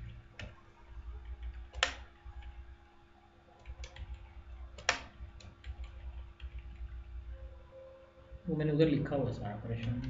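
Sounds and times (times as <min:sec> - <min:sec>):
computer mouse and keyboard clicks: 0:00.0 - 0:00.6, 0:01.2 - 0:02.6, 0:03.6 - 0:07.0.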